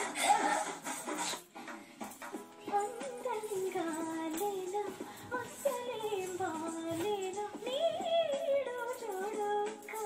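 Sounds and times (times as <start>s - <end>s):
woman singing: 2.6s - 10.0s.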